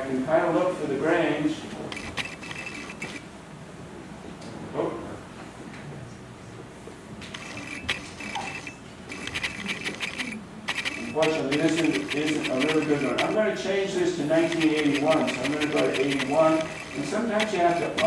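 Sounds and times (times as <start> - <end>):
mouse scroll wheel clicking: 1.9 - 3.2, 7.3 - 13.4, 14.4 - 18.0.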